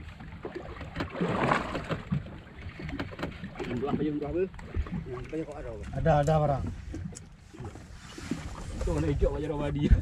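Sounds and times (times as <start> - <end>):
water washing against hull: 0.0 - 10.0.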